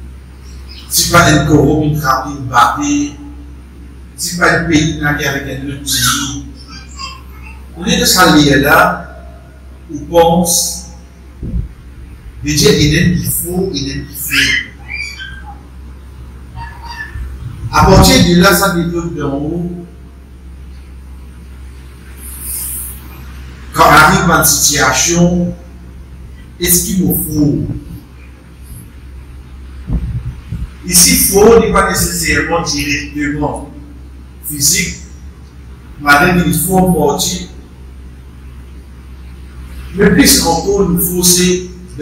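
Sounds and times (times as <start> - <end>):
faint background rumble: 0.0 - 42.0
steady low hum: 0.0 - 42.0
faint hiss: 17.2 - 42.0.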